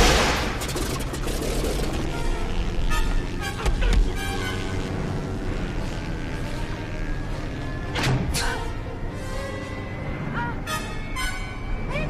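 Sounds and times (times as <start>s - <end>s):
machine-gun fire: 0.0s - 1.3s
low engine drone: 0.0s - 12.0s.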